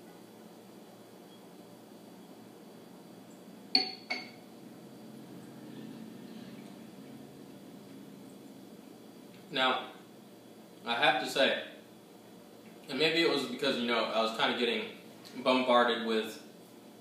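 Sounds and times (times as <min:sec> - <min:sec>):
glass clinking on counter: 0:03.7 - 0:04.4.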